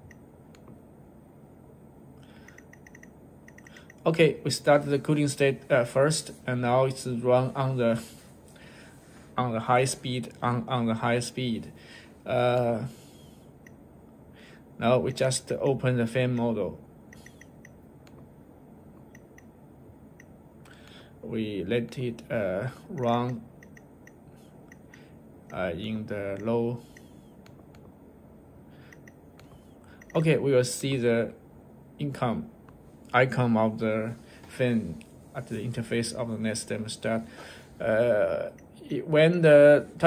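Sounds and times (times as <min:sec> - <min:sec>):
faint steady background noise: 0:00.0 - 0:40.0.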